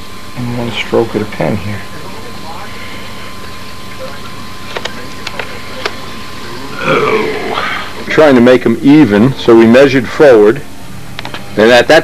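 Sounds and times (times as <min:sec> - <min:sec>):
background hiss and hum: 0:00.0 - 0:12.0
low murmured voice: 0:01.8 - 0:08.1.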